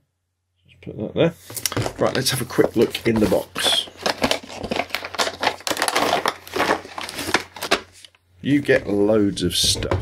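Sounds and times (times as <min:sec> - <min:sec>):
cardboard packaging crinkling and scraping: 0:01.4 - 0:09.0.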